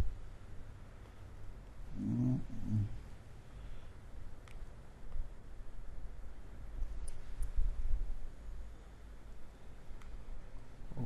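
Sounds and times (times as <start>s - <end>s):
man humming: 1.9s - 3.0s.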